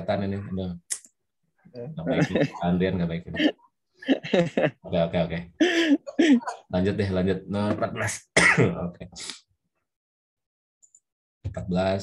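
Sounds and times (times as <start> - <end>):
man clearing throat: 5.9 - 6.7, 8.0 - 8.9.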